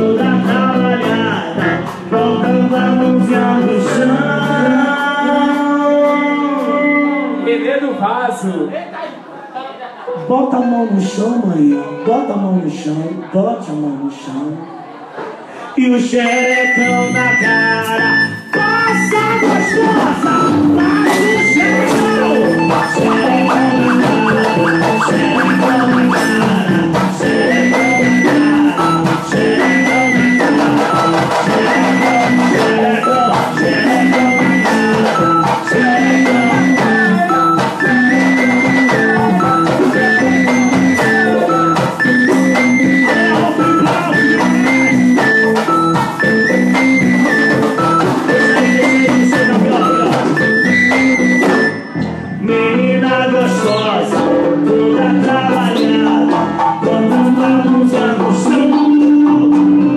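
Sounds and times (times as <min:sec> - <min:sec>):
keyboard riff: 0:00.0 - 0:07.7, 0:10.1 - 0:13.3, 0:16.0 - 0:59.9
guitar: 0:00.0 - 0:59.9
steady drum beat: 0:16.8 - 0:51.9.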